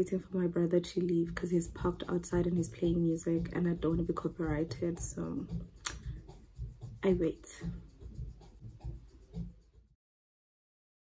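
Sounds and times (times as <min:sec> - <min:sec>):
muffled bass beat of music: 0:00.1 - 0:09.8.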